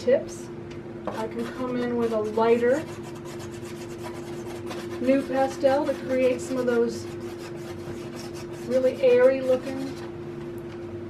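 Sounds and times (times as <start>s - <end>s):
pastel stick scratching paper: 1.1s - 10.0s.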